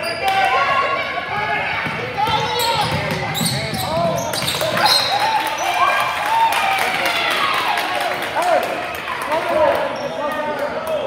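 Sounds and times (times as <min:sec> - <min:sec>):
sneakers squeaking: 0:00.0 - 0:05.9.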